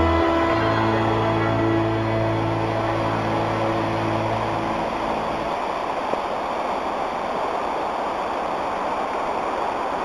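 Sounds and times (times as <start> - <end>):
background music: 0.0 - 5.6
stream rushing over rocks: 0.0 - 10.0.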